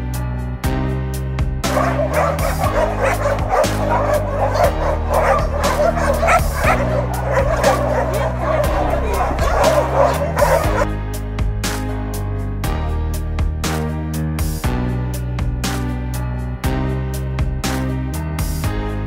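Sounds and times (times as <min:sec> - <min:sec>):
background music: 0:00.0 - 0:19.0
dogs barking: 0:01.6 - 0:10.9.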